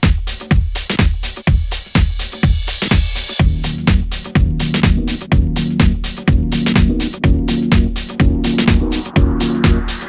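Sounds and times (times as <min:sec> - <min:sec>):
house dance music: 0:00.0 - 0:10.0.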